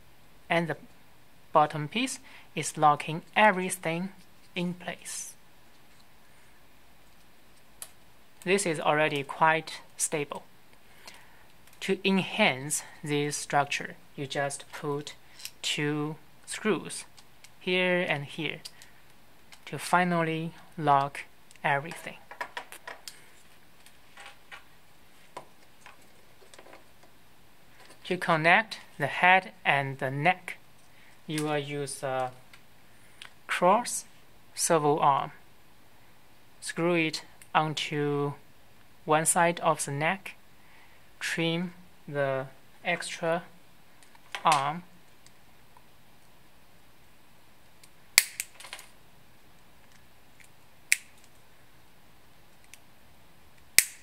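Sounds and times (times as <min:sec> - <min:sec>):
side cutters snapping plastic: 0:48.2 - 0:48.6, 0:53.8 - 0:54.0.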